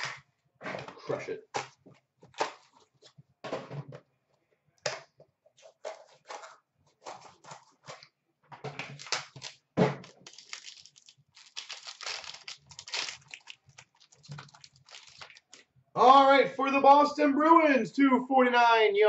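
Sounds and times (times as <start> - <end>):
cardboard and plastic rustling: 5.6 - 15.7
plastic wrapping crinkling and tearing: 8.8 - 15.7.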